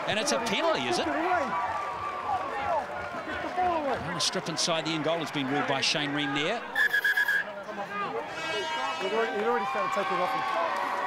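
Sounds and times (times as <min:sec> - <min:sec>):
voices of players and crowd: 0:00.0 - 0:11.0
referee's whistle blast: 0:06.7 - 0:07.5.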